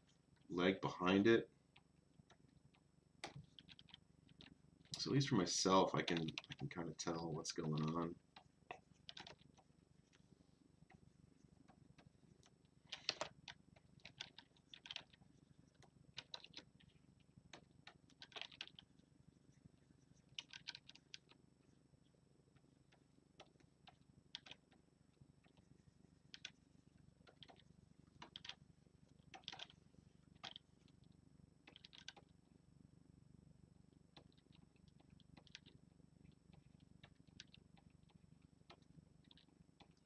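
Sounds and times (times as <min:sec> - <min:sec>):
low steady hum: 0:00.0 - 0:40.0
stylus clicks and taps: 0:01.7 - 0:05.1.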